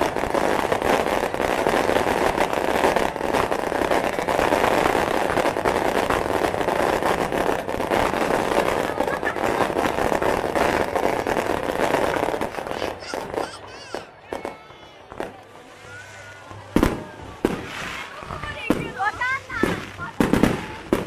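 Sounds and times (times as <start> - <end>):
crowd chatter: 0.0 - 21.0
firework pops and crackles: 0.0 - 21.0.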